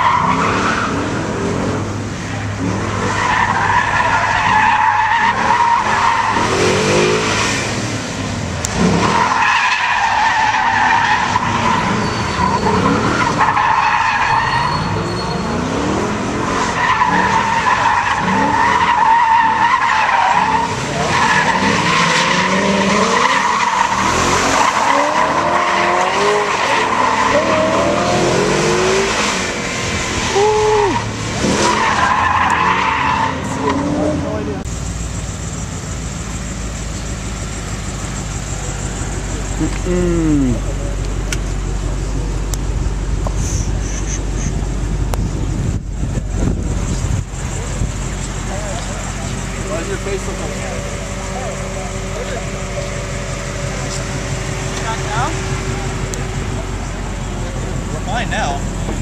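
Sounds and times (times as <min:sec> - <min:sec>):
tires squealing: 0:00.0 - 0:34.7, 0:35.4 - 0:59.0
car engine revving: 0:00.0 - 0:59.0.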